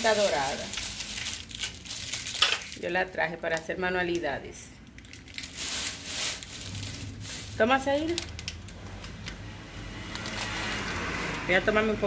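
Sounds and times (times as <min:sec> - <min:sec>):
plastic wrapping crinkling: 0:00.0 - 0:03.2, 0:04.8 - 0:09.2.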